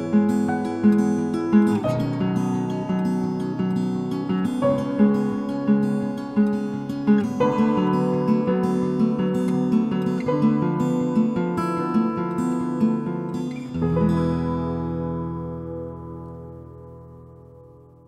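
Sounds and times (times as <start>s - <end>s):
acoustic guitar picking: 0.0s - 18.0s
ringing guitar chord: 0.0s - 18.0s.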